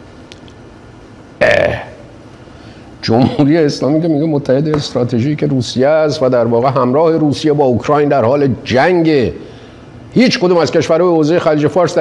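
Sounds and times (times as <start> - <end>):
man saying eh: 1.4 - 2.1.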